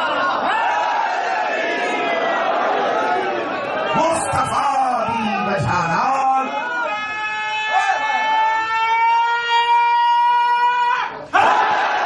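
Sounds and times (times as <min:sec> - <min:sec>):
crowd shouting: 0:00.0 - 0:05.7, 0:06.4 - 0:12.0.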